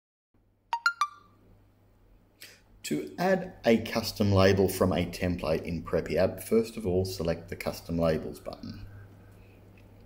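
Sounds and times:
three-note electronic chime: 0.8s - 1.3s.

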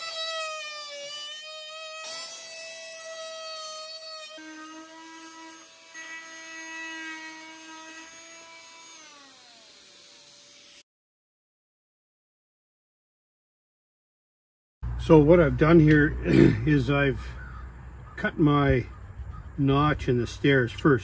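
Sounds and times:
oscillating tool buzzing whine: 0.0s - 10.8s.

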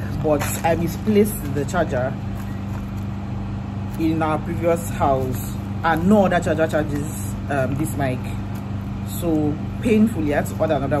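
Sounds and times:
low mechanical motor hum: 0.0s - 11.0s.

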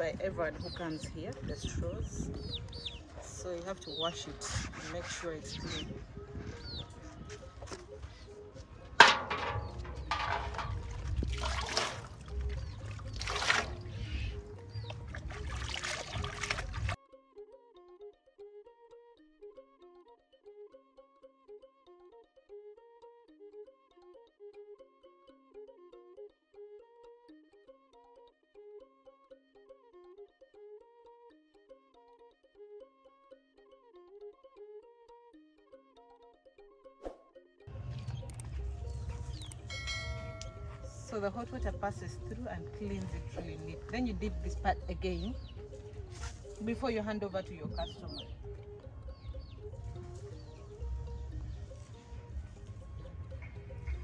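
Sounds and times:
soft instrumental melody: 0.0s - 54.0s
outdoor ambience: 0.7s - 17.0s, 37.0s - 54.0s
hands splashing in water: 10.1s - 17.0s.

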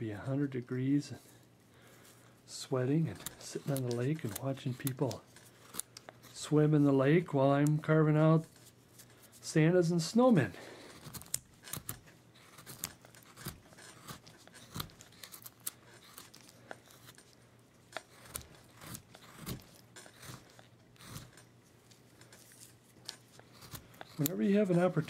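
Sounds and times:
carving blade cutting wood: 2.5s - 6.8s, 10.6s - 21.5s, 22.2s - 25.0s.

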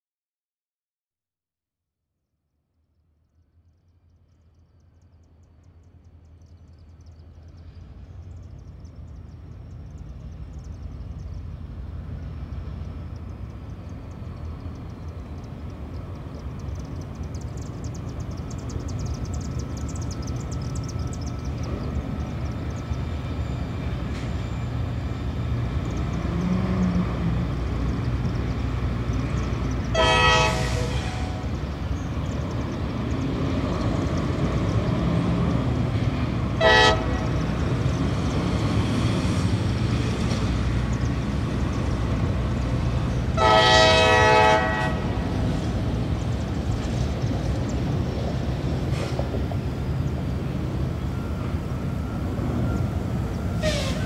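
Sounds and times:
low train rumble: 2.8s - 54.0s
locomotive horn blasts: 29.8s - 31.6s, 36.6s - 37.6s, 43.3s - 45.4s, 53.4s - 54.0s.

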